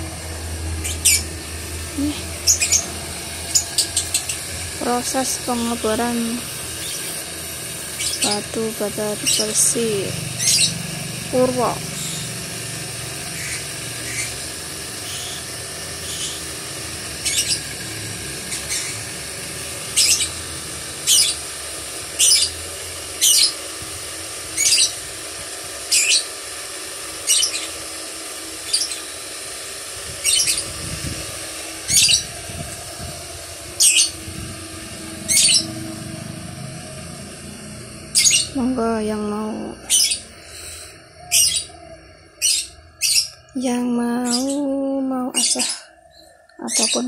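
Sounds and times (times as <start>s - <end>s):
electric motor humming: 0.0s - 47.0s
bird chirping: 2.0s - 2.9s, 3.5s - 4.4s, 35.2s - 35.8s, 38.1s - 38.6s, 42.4s - 47.0s.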